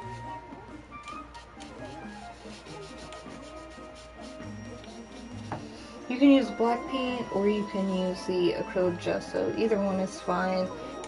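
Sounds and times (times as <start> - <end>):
quiet background music: 0.0 - 11.0
paintbrush scratching on canvas: 1.4 - 5.8.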